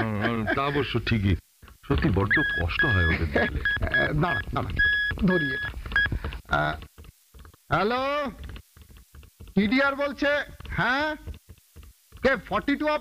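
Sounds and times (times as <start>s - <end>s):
men talking: 0.0s - 5.7s, 6.5s - 6.9s, 7.7s - 8.5s, 9.6s - 11.3s, 12.2s - 13.0s
morse code beeps: 2.2s - 6.2s.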